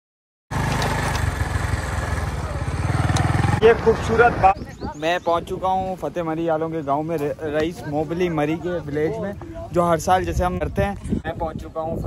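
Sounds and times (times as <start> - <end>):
motorcycle engine running: 0.5 - 4.9
wind rushing over microphone: 2.6 - 6.8, 9.0 - 12.0.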